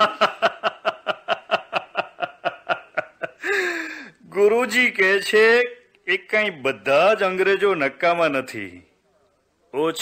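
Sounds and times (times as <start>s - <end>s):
person laughing: 0.0s - 4.0s.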